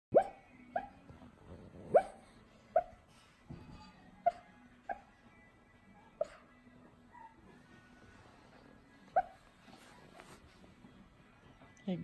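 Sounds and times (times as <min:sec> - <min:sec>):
dog yipping in sleep: 0:00.1 - 0:01.0, 0:01.8 - 0:03.0, 0:04.2 - 0:05.2, 0:09.0 - 0:10.4.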